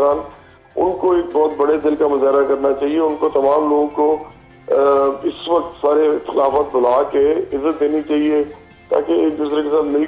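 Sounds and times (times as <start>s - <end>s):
man speaking over phone line: 0.0s - 10.0s.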